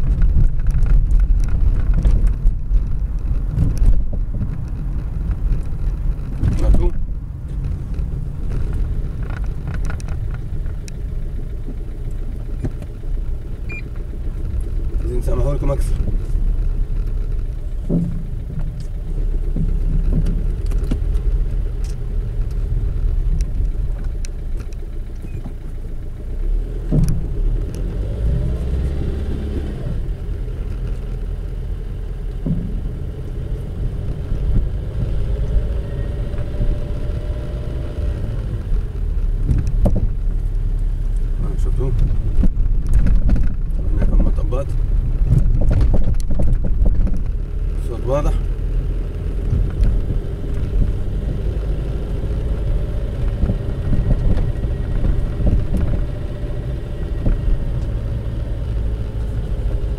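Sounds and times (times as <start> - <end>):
road rumble inside car: 0.0 - 59.9
dull knocks from car rear: 17.8 - 18.7, 32.4 - 33.1, 39.4 - 40.2.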